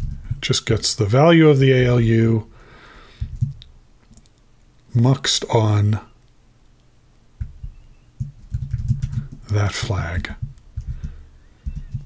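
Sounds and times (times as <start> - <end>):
low thumps: 7.4 - 9.5, 10.2 - 12.0.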